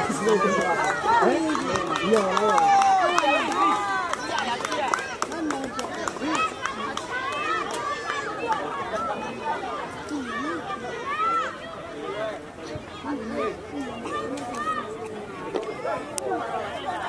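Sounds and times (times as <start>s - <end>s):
children shouting: 0.0s - 12.4s, 13.0s - 15.0s.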